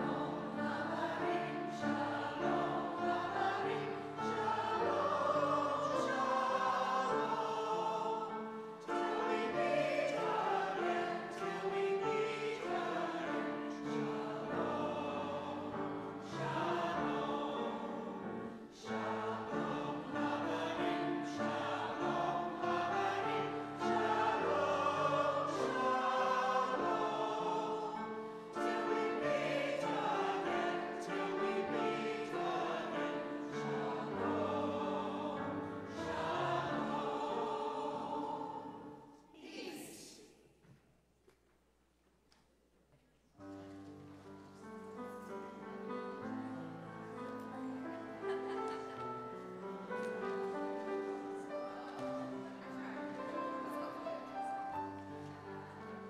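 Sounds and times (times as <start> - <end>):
choir singing a hymn: 0.0 - 40.4, 44.3 - 56.0.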